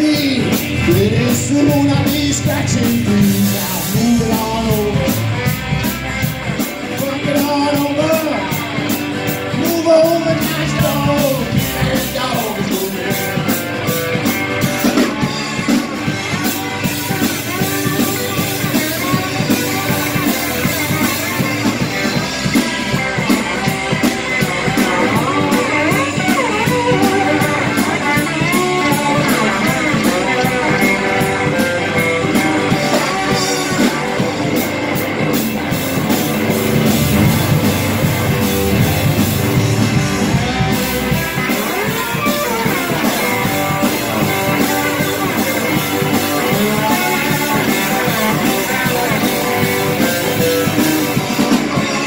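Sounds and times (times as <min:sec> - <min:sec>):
drum kit with cymbal strokes: 0:00.0 - 0:52.0
electric bass: 0:00.0 - 0:52.0
electric guitar lead bending notes: 0:00.0 - 0:52.0.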